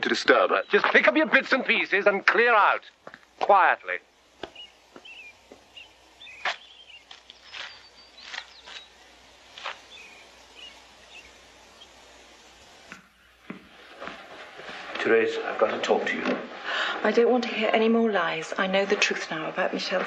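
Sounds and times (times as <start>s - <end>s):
birds chirping faintly: 0.0s - 20.0s
low steady background: 0.0s - 20.0s.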